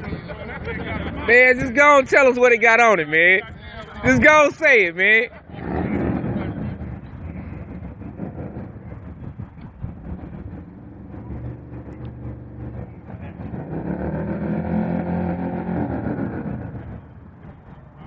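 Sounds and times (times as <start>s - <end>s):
motorcycle engine running: 5.5s - 18.0s.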